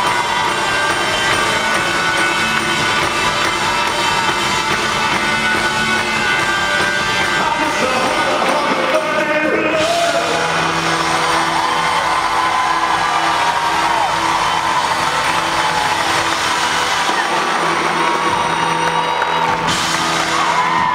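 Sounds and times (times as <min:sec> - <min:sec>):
audience cheering and whooping: 0:00.0 - 0:06.2, 0:09.7 - 0:20.9
rock band holding a chord: 0:00.0 - 0:20.9.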